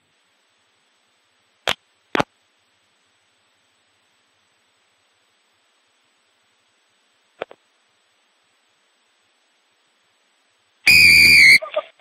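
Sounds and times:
referee's whistle blast: 0:10.9 - 0:11.6.

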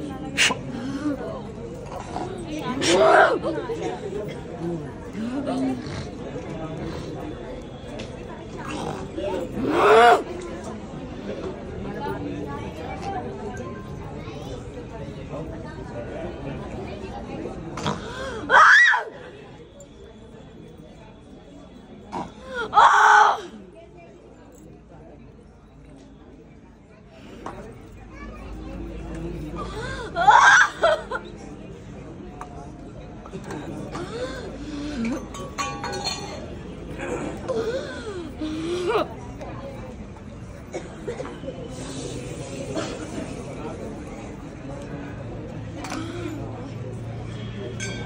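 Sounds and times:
crowd chatter: 0:00.0 - 0:48.0
low background voices: 0:00.0 - 0:48.0.

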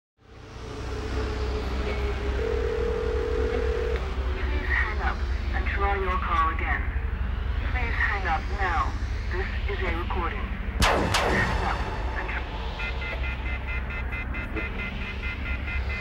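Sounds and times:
telephone line hum: 0:01.8 - 0:04.4
held telephone tone: 0:02.4 - 0:04.1.

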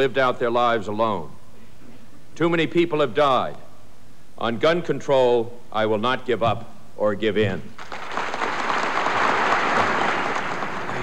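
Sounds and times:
audience applauding: 0:07.8 - 0:11.0.

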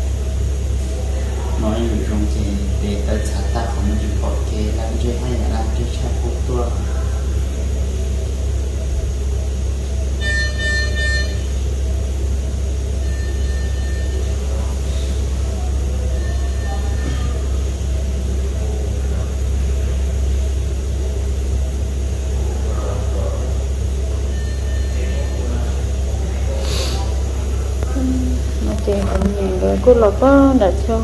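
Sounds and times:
steady low hum: 0:00.0 - 0:31.0
medical equipment beep: 0:13.0 - 0:14.7, 0:16.0 - 0:17.6, 0:24.2 - 0:25.9.

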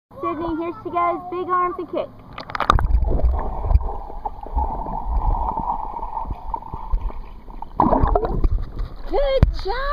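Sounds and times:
pool water splashing: 0:02.3 - 0:09.9.

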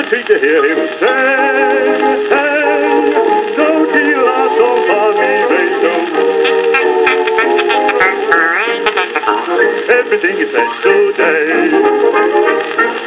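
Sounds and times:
band playing on a record: 0:00.0 - 0:13.0.

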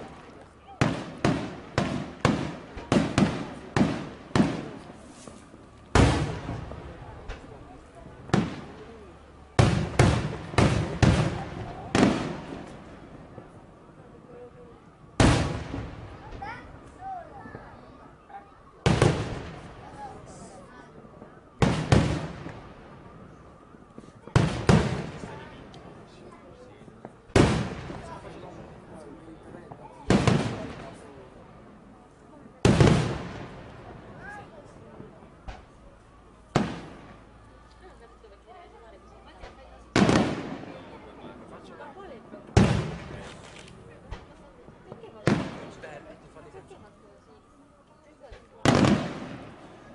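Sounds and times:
firework booms echoing: 0:00.0 - 0:13.6, 0:15.1 - 0:16.8, 0:18.8 - 0:26.1, 0:26.9 - 0:31.8, 0:32.5 - 0:35.9, 0:36.5 - 0:37.4, 0:39.9 - 0:41.5, 0:42.4 - 0:43.4, 0:44.0 - 0:46.0, 0:48.6 - 0:49.9.

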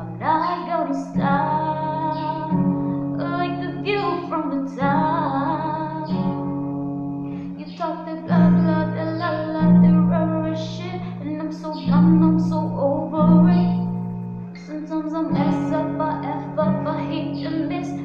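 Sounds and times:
woman singing: 0:00.0 - 0:06.8, 0:07.5 - 0:14.0, 0:14.6 - 0:18.0
strummed acoustic guitar: 0:00.0 - 0:18.0.

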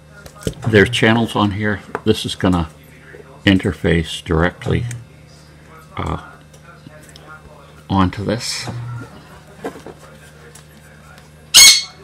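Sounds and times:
high-pitched squawk: 0:11.5 - 0:12.0.

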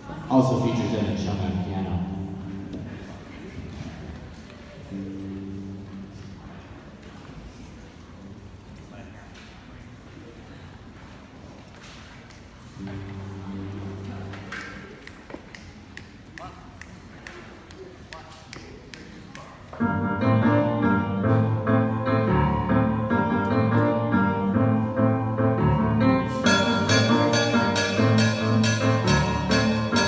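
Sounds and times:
jazz big band playing: 0:19.8 - 0:30.0
cymbals: 0:26.2 - 0:30.0.

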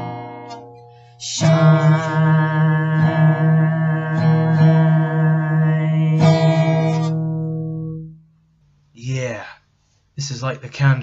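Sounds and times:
acoustic guitar strummed: 0:00.0 - 0:08.5.

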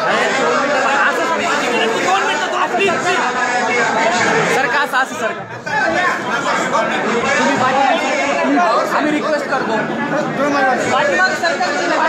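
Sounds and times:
crowd of men talking: 0:00.0 - 0:12.0.

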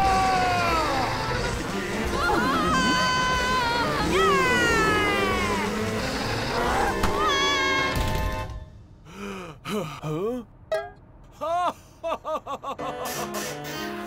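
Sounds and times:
cartoon music with falling glide: 0:12.8 - 0:14.0.

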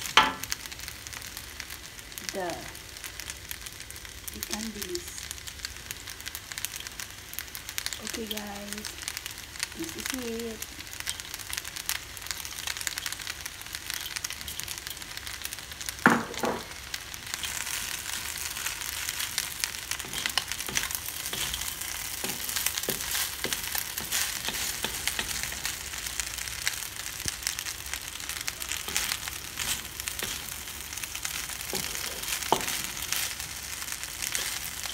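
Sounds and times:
crackles and pops: 0:00.0 - 0:34.9
pasta sizzling in a pan: 0:00.0 - 0:34.9
spatula scraping a pan: 0:20.0 - 0:25.6.

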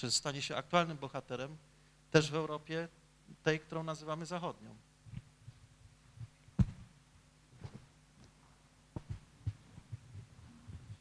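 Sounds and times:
electrical hum: 0:00.0 - 0:11.0
microphone handling thumps: 0:05.0 - 0:08.0, 0:08.9 - 0:11.0
microphone click: 0:06.6 - 0:06.9.

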